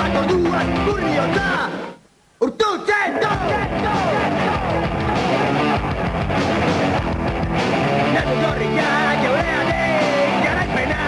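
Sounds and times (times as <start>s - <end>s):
rock band playing live: 0.0s - 1.5s, 3.3s - 11.0s
drum kit: 3.3s - 11.0s
electric guitar: 3.3s - 11.0s.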